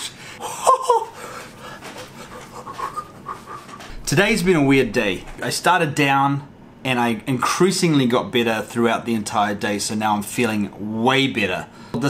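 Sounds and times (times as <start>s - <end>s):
man panting laughter: 0.4s - 4.0s.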